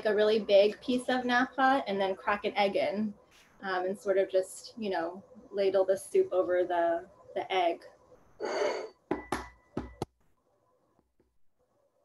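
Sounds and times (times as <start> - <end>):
breathy sound: 8.4 - 9.0.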